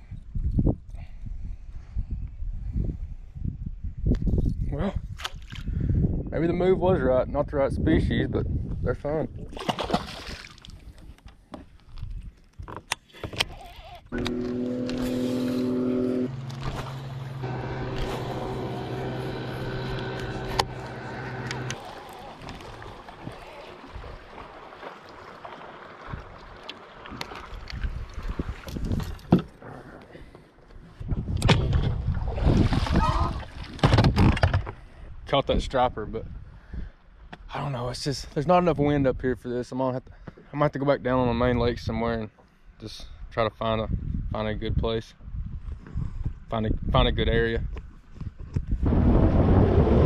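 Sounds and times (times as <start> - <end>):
fish splashing into water: 9.5 - 10.7, 21.8 - 28.3, 32.2 - 33.8
electric trolling motor humming: 14.1 - 23.4.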